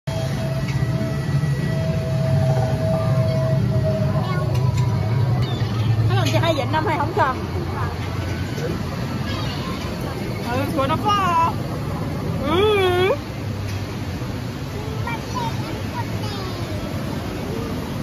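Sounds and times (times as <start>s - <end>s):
water around boat: 0.1s - 18.0s
water ride machinery rumble: 0.1s - 18.0s.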